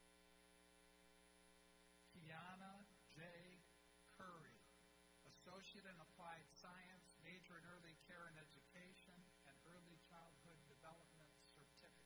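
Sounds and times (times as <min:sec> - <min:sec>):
steady electrical hum: 0:00.0 - 0:12.0
man speaking over public address: 0:02.2 - 0:04.7, 0:05.3 - 0:12.0.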